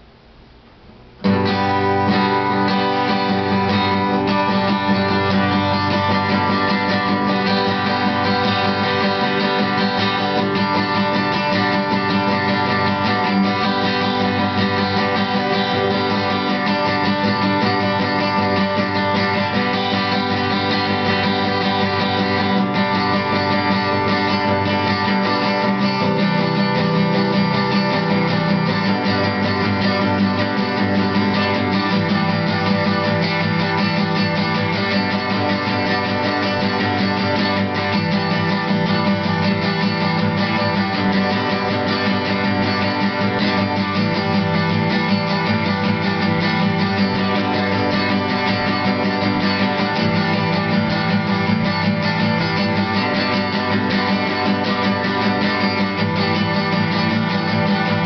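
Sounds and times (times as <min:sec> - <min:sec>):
solo acoustic guitar: 0:00.0 - 0:58.0.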